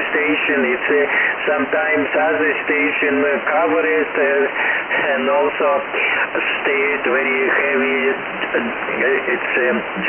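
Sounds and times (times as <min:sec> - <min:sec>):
radio band noise: 0:00.0 - 0:10.0
man speaking over radio: 0:05.0 - 0:10.0.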